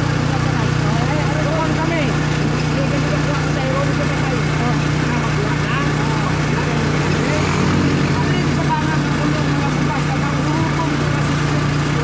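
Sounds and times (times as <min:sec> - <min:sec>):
motorcycle engine idling: 0:00.0 - 0:12.0
people talking: 0:00.0 - 0:12.0.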